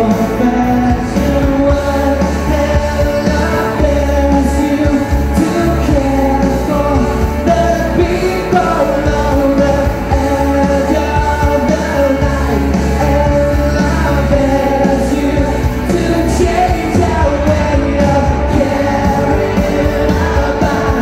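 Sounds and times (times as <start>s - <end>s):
sustained bass line: 0.0s - 21.0s.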